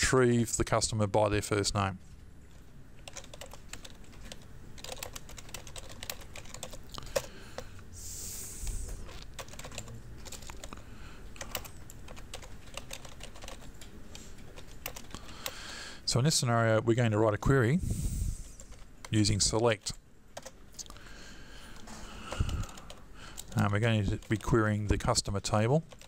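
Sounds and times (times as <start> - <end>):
typing on keyboard: 3.0 - 7.7, 9.0 - 10.8, 11.4 - 15.6, 20.4 - 20.6, 21.8 - 24.6.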